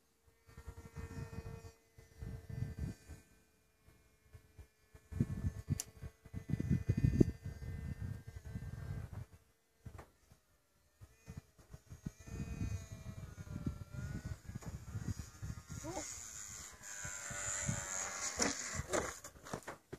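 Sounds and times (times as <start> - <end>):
model jet motor whining: 0.3 - 9.4, 10.0 - 19.4
wind buffeting microphone: 5.1 - 9.4, 11.3 - 18.0.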